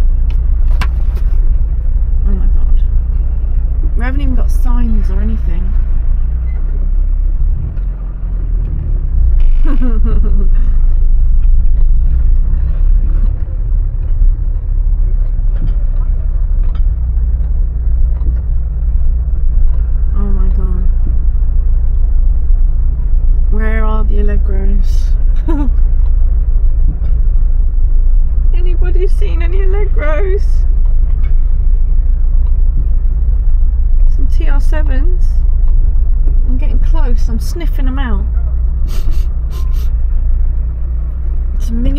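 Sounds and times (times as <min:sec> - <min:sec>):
car engine low drone: 0:00.0 - 0:41.9.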